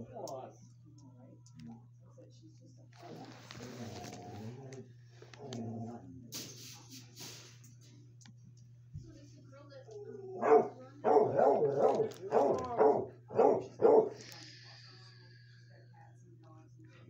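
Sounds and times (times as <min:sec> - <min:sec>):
steady low hum: 0:00.0 - 0:17.0
dog barking: 0:10.3 - 0:14.2.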